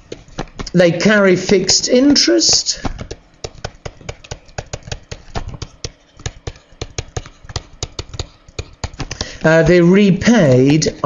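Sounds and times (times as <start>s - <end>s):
stylus tapping on tablet screen: 0.0s - 11.0s.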